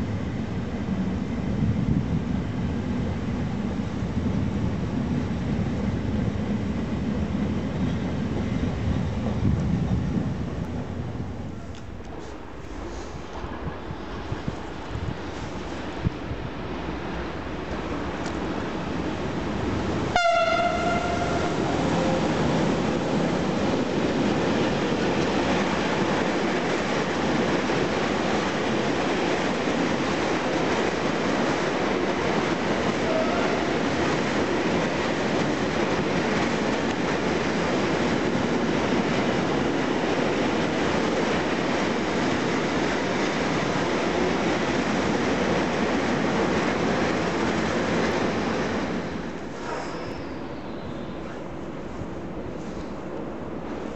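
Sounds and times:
train wheels rumbling on rails: 0.0 - 53.9
train horn blast: 20.1 - 22.3, 33.0 - 33.7.

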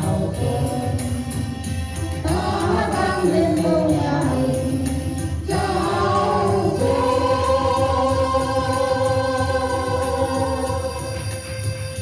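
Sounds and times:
group singing through speaker: 0.0 - 1.5, 2.2 - 11.5.

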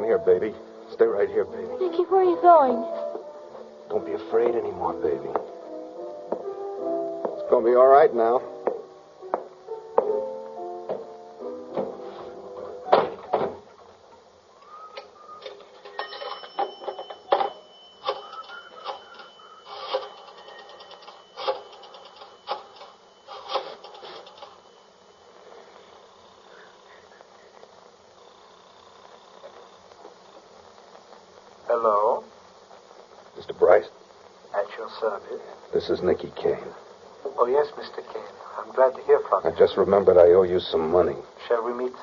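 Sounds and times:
music: 0.0 - 15.6
telephone line noise: 14.5 - 31.0
telephone dialling clicks: 15.4 - 24.6.

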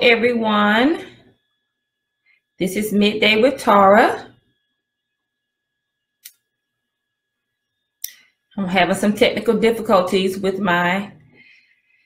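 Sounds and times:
faint steady electronic tone: 0.0 - 12.0.

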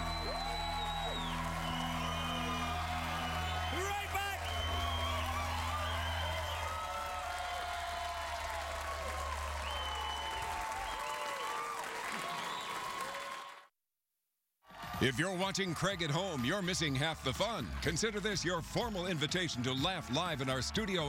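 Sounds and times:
studio audience applauding and cheering: 0.0 - 13.7, 14.7 - 21.0.

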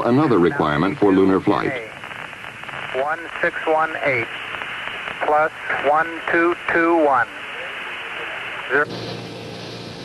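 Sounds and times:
radio voice transmission: 0.0 - 8.9
steady radio hiss: 0.0 - 10.0.

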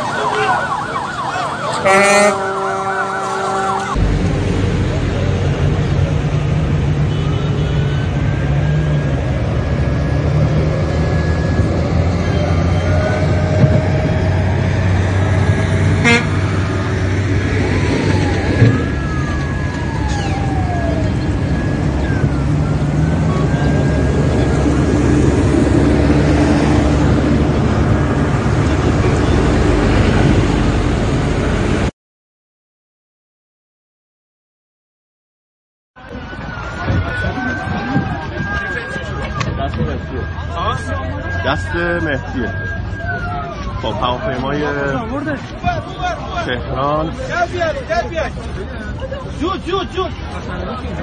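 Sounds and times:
siren-like wail: 0.0 - 4.5, 7.1 - 31.7, 36.0 - 47.3
crowd voices: 0.0 - 30.3, 36.0 - 51.0
vehicle engines running: 0.0 - 31.9, 36.0 - 51.0
car horns honking: 1.6 - 4.0, 6.9 - 9.1, 15.3 - 17.0.

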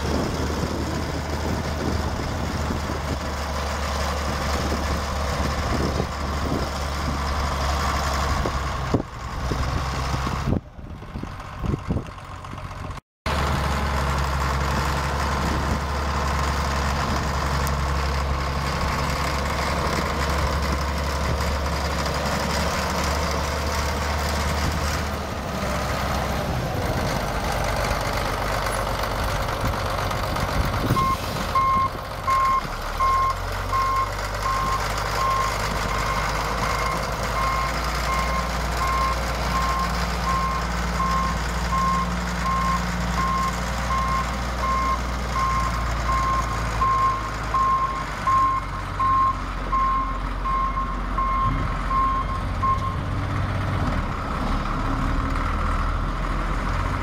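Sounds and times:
diesel engine running: 0.0 - 57.0.

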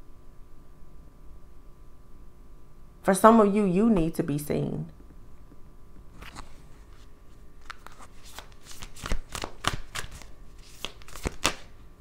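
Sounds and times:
cards being shuffled: 6.2 - 11.8.

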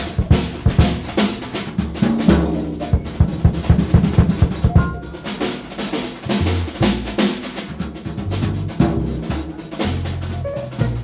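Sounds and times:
jazz drum kit: 0.0 - 11.0.

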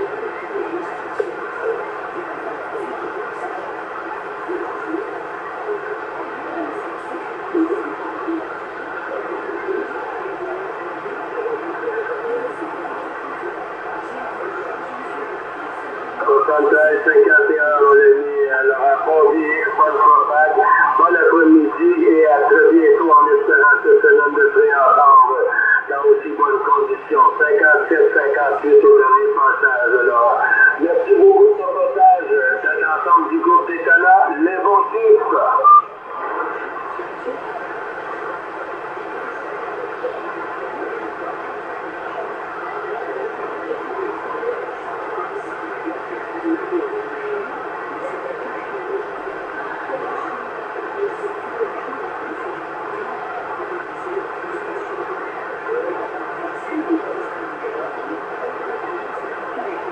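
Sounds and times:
radio static hiss: 0.0 - 59.9
voice over radio: 0.0 - 59.9.

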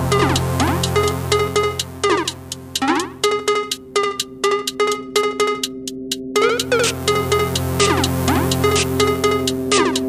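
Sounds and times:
minimal techno: 0.0 - 10.0
cowbell-like percussion hits: 0.1 - 10.0.

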